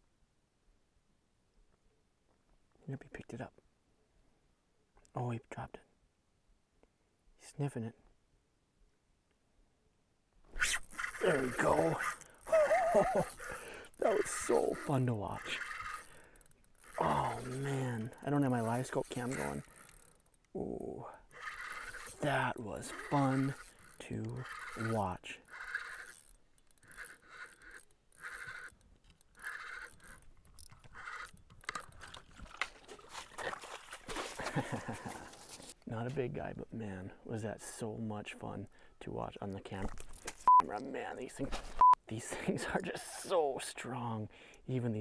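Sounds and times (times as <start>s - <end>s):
fishing reel whirring: 10.5s - 33.0s.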